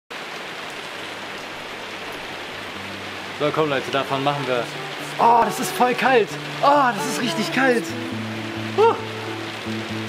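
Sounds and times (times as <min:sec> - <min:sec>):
rain on wet tiles: 0:00.1 - 0:10.0.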